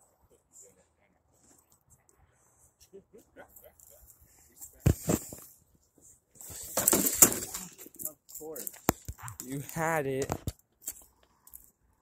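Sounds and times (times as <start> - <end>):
toy car clunking on rocks: 6.4 - 11.7.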